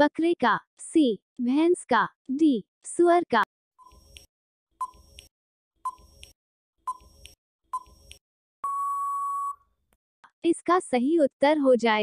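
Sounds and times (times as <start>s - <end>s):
countdown timer beeps: 8.6s - 9.6s.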